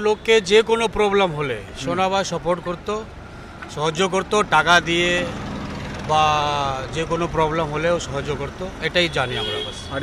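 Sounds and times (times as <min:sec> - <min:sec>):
man speaking: 0:00.0 - 0:03.1, 0:06.1 - 0:10.0
street traffic noise: 0:00.0 - 0:10.0.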